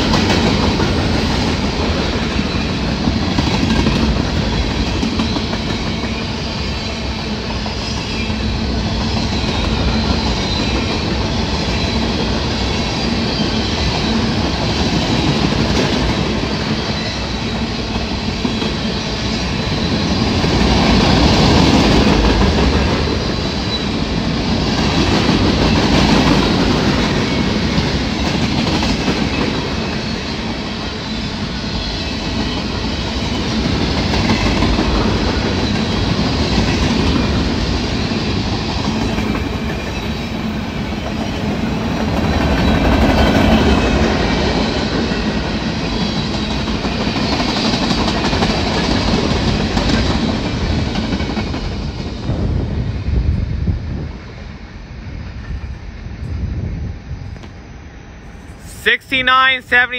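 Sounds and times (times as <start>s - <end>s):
freight train rolling past: 0.0s - 59.9s.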